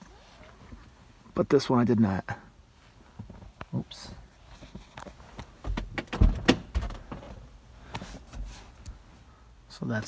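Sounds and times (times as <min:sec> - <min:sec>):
handling knocks and bumps: 0:05.4 - 0:07.4.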